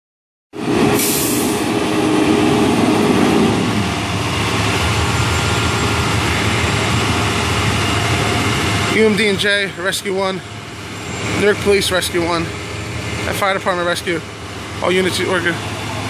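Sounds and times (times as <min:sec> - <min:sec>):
short hiss: 0:01.0 - 0:01.6
large vehicle engines idling: 0:01.0 - 0:16.0.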